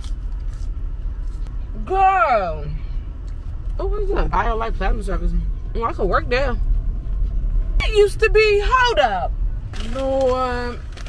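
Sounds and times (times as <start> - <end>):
car engine and road noise: 0.0 - 11.0
woman speaking: 1.8 - 2.8, 3.8 - 6.6, 7.8 - 10.8.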